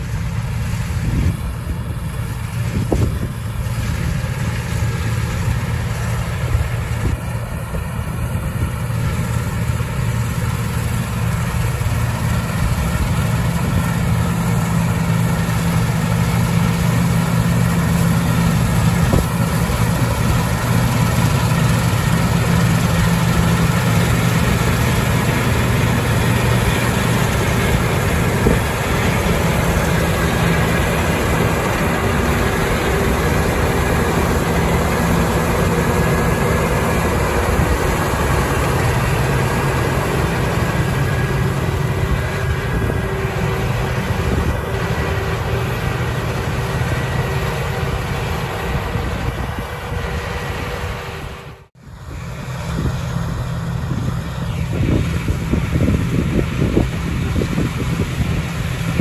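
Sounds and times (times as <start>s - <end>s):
combine harvester engine droning: 0.0s - 59.0s.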